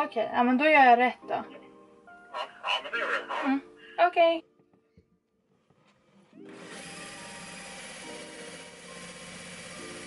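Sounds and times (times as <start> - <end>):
drill grinding through tile: 6.5 - 10.0.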